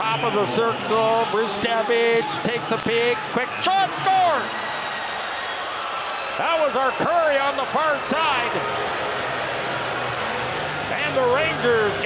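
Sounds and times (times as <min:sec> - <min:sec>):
arena background noise: 0:00.0 - 0:12.0
music playing: 0:07.6 - 0:12.0.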